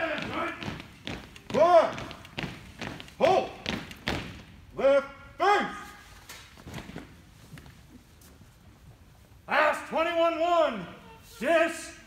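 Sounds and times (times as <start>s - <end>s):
boots marching on floor: 0.0s - 4.6s
person shouting a call: 3.2s - 3.6s, 4.8s - 6.0s, 9.5s - 12.0s.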